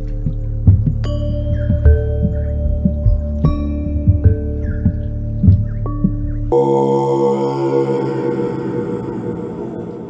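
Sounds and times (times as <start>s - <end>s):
chanting with overtones: 6.5s - 10.0s.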